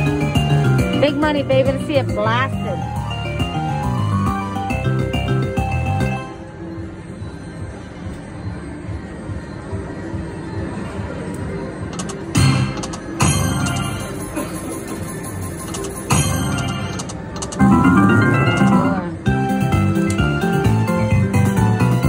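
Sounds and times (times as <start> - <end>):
slot machine bonus music: 0.0 - 6.4, 12.0 - 14.4, 15.1 - 22.0
slot machine sound effects: 0.0 - 6.4, 12.0 - 14.4, 15.1 - 22.0.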